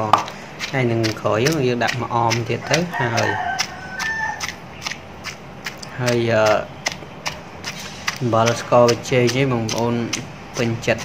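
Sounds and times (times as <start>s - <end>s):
pestle pounding in mortar: 0.0s - 11.0s.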